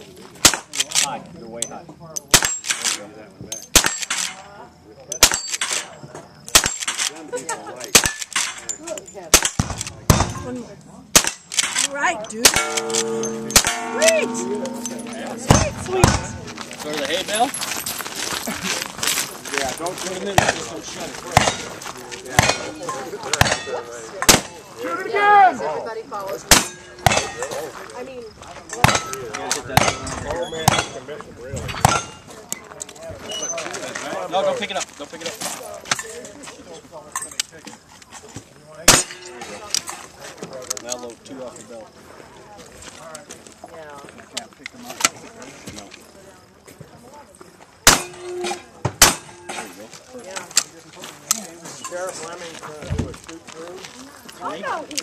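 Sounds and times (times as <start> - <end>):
gunshots: 3.7 - 4.3, 5.2 - 5.8, 6.5 - 7.1, 7.9 - 8.5, 9.3 - 10.5, 11.1 - 13.8, 24.3 - 24.5
shotgun shots: 3.7 - 4.3, 5.2 - 5.8, 6.5 - 7.1, 7.9 - 8.5, 9.3 - 10.5, 11.1 - 11.8, 49.0 - 49.4
metallic ring of struck steel: 12.4 - 17.9.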